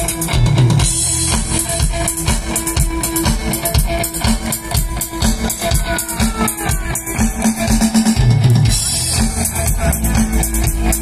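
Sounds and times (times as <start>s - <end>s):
drum-kit beat: 0.0s - 11.0s
electric guitar: 0.0s - 11.0s.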